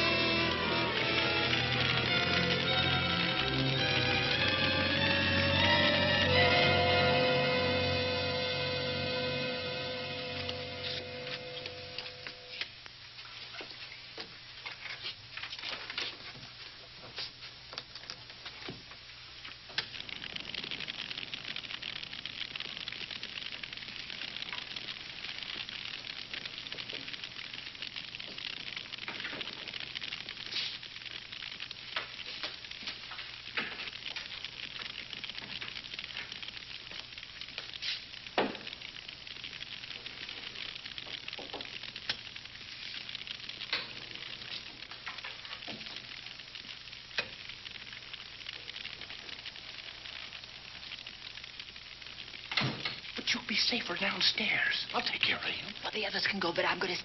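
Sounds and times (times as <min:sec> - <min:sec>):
sharp clicks and pops: 0:00.0 - 0:05.4, 0:10.4 - 0:57.0
crackling hiss: 0:00.0 - 0:57.0.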